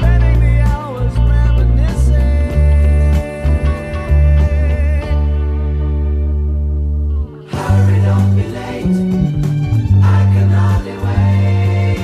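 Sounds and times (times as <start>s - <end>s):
backing music: 0.0s - 12.0s
electric bass plucked: 0.0s - 12.0s.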